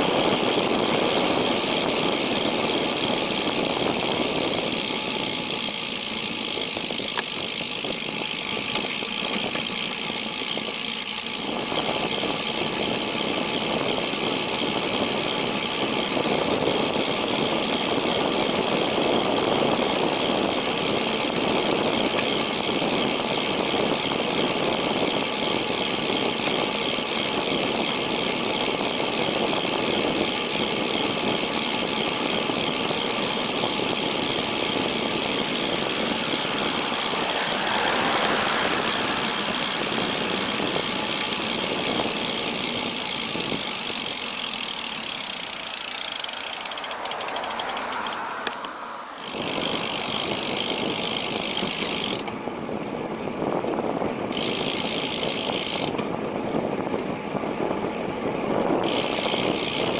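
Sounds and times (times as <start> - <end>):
bicycle tyres on asphalt: 0.0 - 59.9
freewheel ratchet buzzing: 0.0 - 59.9
vehicle passing: 33.8 - 42.4, 44.9 - 51.4.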